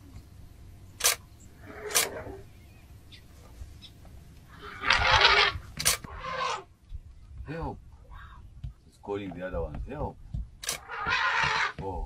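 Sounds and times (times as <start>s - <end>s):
sharp click: 1.0s - 1.3s, 1.9s - 2.2s, 5.8s - 6.1s, 10.6s - 10.8s
elephant trumpeting: 1.6s - 2.5s, 4.5s - 6.7s, 10.7s - 11.8s.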